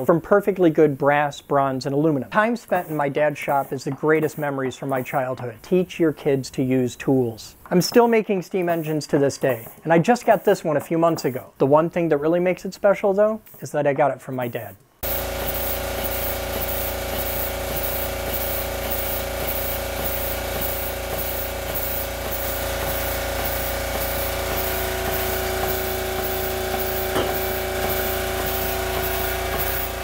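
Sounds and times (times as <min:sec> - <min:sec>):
model steam engine running: 0:15.0 - 0:30.0
regular exhaust beat: 0:15.0 - 0:30.0
steam hiss and hum: 0:15.0 - 0:30.0.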